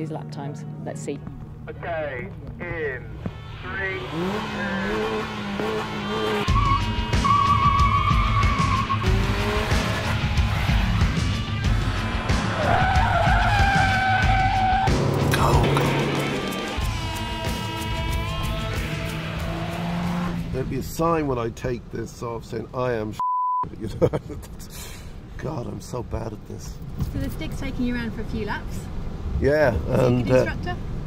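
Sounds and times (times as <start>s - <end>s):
car engine at high revs: 3.2s - 20.8s
tyres squealing: 3.3s - 20.0s.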